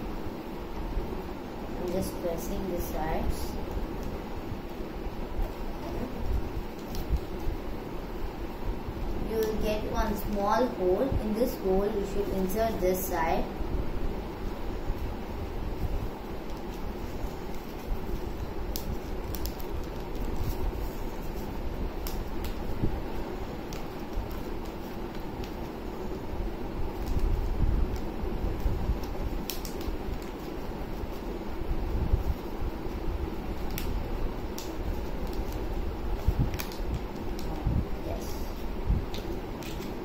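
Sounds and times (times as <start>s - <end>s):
steady background hum: 0.0s - 40.0s
paper being folded and creased: 16.5s - 22.7s, 26.9s - 28.1s, 28.9s - 31.3s, 34.6s - 37.5s.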